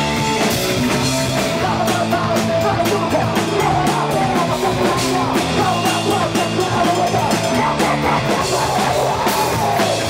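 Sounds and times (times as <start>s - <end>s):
bass guitar: 0.0s - 10.0s
distorted electric guitar: 0.0s - 10.0s.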